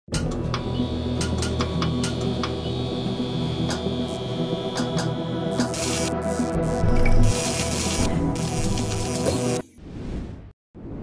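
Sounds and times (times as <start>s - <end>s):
low drone: 0.5s - 9.5s.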